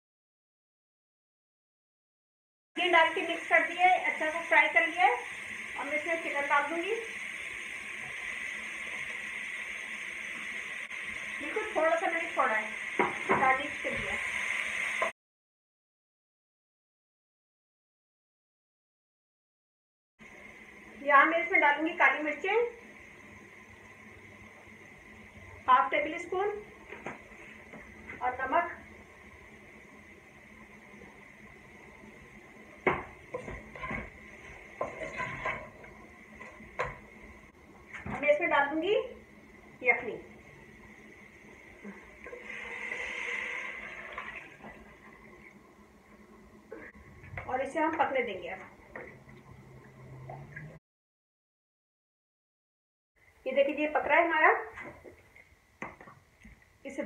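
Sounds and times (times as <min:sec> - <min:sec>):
vegetables sizzling in oil: 0:02.8 - 0:15.1, 0:20.3 - 0:45.3.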